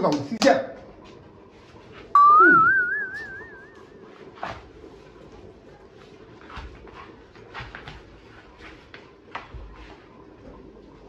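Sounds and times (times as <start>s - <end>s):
low falling sound: 2.2s - 3.9s
wavering whistle: 2.2s - 4.0s.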